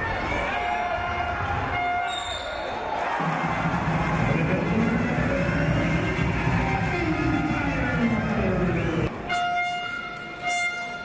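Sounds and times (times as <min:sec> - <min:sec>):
arena crowd noise: 0:00.0 - 0:11.0
music: 0:03.2 - 0:11.0.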